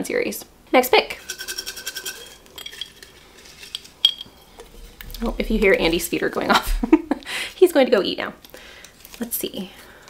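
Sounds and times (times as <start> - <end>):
food clinking: 1.1 - 6.5.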